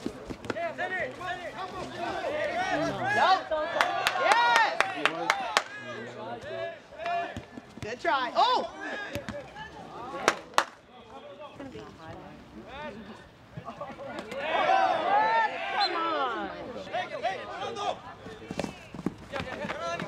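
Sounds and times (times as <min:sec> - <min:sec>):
voices shouting and calling: 0:00.6 - 0:11.6, 0:12.6 - 0:18.9.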